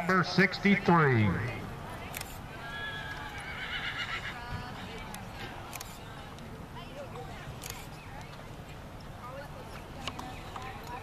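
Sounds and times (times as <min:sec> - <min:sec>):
horse whinnying: 0:02.6 - 0:04.4.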